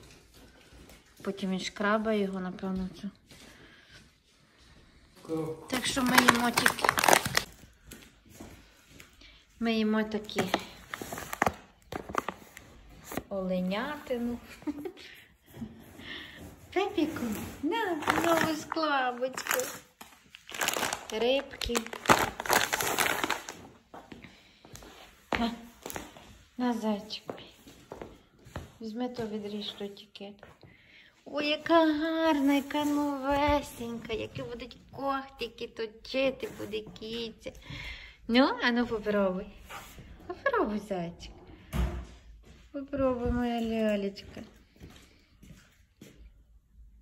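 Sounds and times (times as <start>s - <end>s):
plastic bags rustling: 5.7s - 14.8s, 16.8s - 23.9s.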